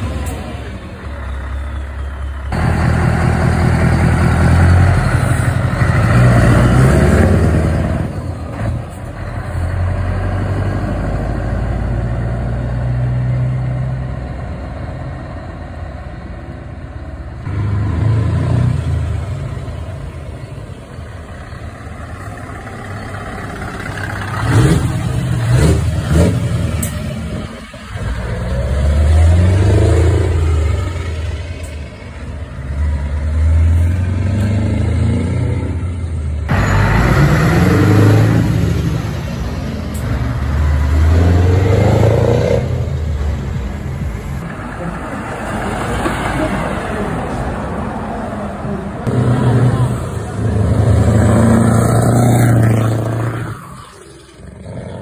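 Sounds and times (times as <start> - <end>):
diesel trucks passing: 0.0 - 55.0.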